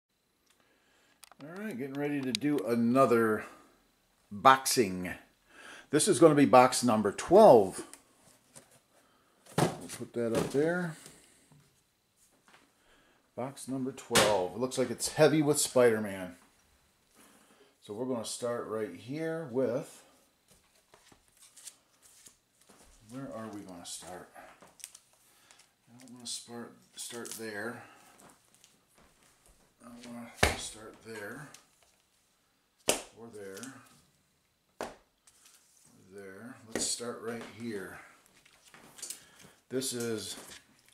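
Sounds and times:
comic books rustling: 7.6s - 12.7s, 20.4s - 32.4s, 35.2s - 40.9s.

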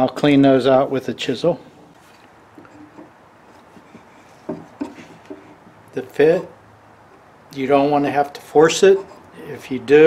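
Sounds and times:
wooden knocks and rubs: 2.6s - 5.7s.

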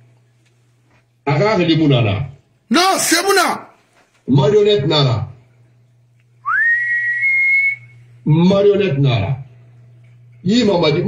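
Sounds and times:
whistled note: 6.5s - 8.0s.

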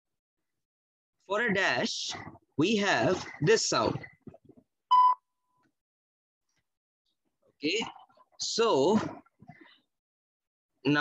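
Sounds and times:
electronic morse beep: 4.9s - 5.2s.

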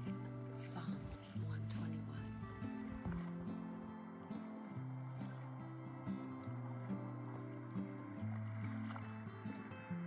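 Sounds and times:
slow low background music: 0.0s - 10.0s.

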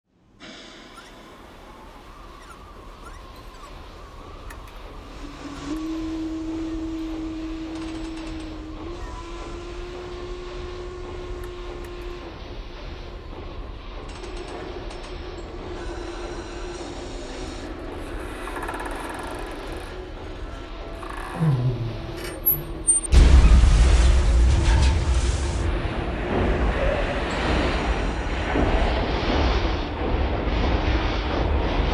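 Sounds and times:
low mechanical rumble: 0.7s - 31.9s
sustained hum shifting pitch: 1.4s - 14.1s, 19.4s - 23.5s.

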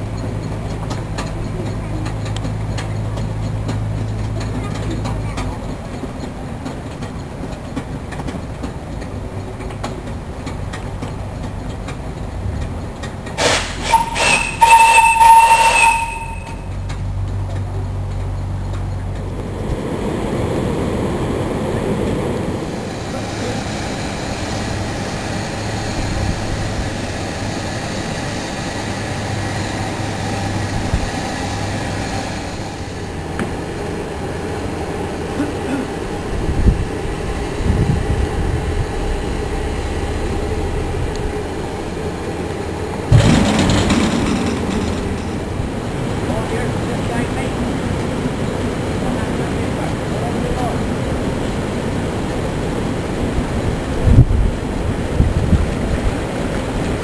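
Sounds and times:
boat engine hum: 0.0s - 57.0s
steam hissing: 13.4s - 16.5s, 22.2s - 33.7s
sudden rush of noise: 36.3s - 46.4s.

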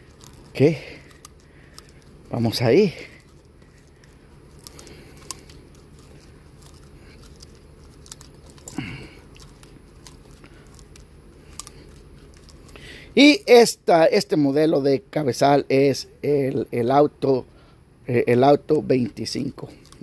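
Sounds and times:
trimmer line rubbing: 0.0s - 13.2s.

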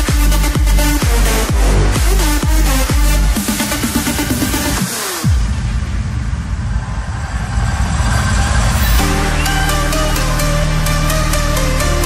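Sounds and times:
deep rumbling bass drone: 0.0s - 12.0s
hiss build-up: 5.4s - 9.5s.

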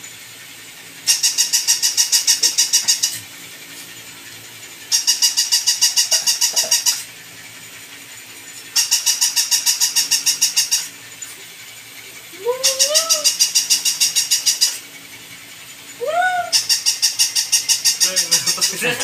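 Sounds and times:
toy dog fast clicking: 1.0s - 3.8s, 4.8s - 7.1s, 8.0s - 11.7s, 12.6s - 15.2s, 16.5s - 18.9s.

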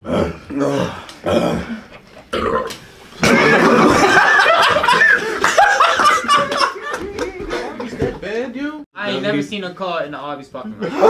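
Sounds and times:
person belching: 0.0s - 4.0s
group laughing loudly: 3.2s - 8.2s.

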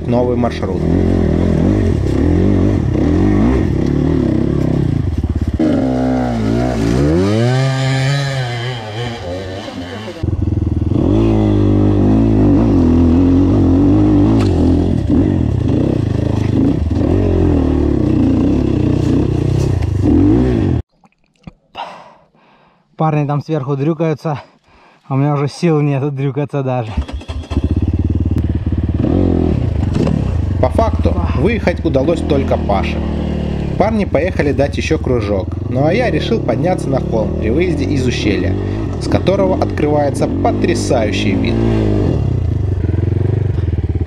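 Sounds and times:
motorcycle engine revving under load: 0.6s - 20.8s, 27.0s - 44.0s.

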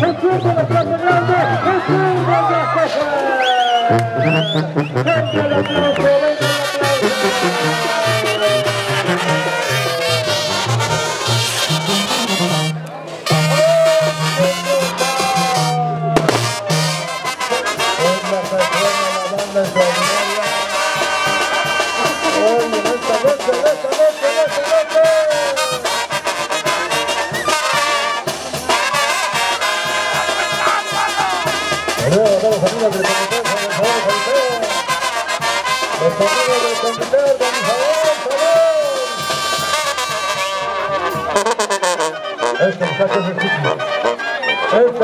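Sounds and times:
brass band music: 0.0s - 3.2s, 3.8s - 45.0s.

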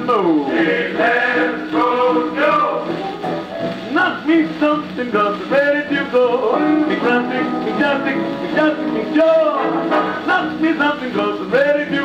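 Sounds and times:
man singing: 0.0s - 3.0s, 3.8s - 12.0s
big-band swing record: 0.0s - 12.0s.

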